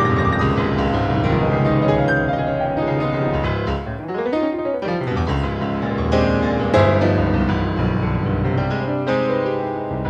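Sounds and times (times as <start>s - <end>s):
solo piano playing: 0.0s - 10.0s.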